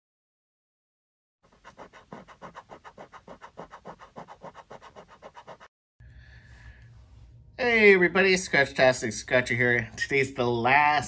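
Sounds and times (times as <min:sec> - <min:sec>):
coin scratching a ticket: 0:01.5 - 0:05.7.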